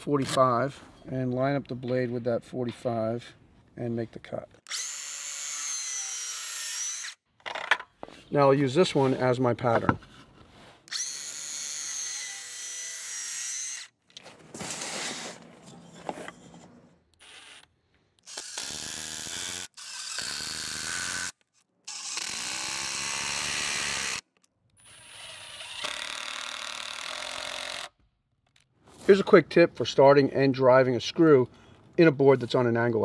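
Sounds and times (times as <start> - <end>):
circular saw cutting wood: 4.7 - 7.2, 10.9 - 13.9, 17.2 - 24.2
power driver running screws: 17.2 - 24.2.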